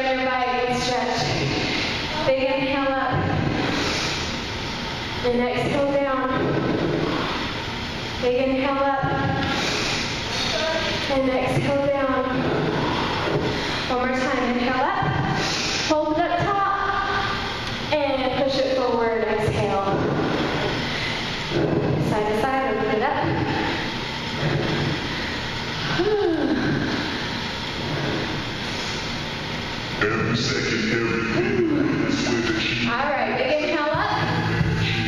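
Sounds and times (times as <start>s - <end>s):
whir of spin bikes: 0.0s - 35.0s
long exhale: 9.4s - 10.6s, 15.4s - 16.0s.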